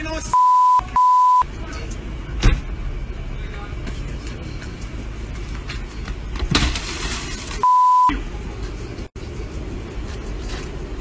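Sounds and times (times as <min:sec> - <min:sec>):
street noise: 0:00.0 - 0:11.0
censor bleeps: 0:00.3 - 0:01.5, 0:07.6 - 0:08.2.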